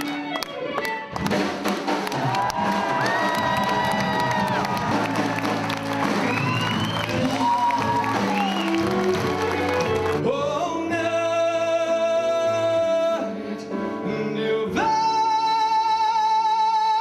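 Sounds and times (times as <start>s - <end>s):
audience applauding and cheering: 0.0s - 10.4s
music playing: 0.0s - 17.0s.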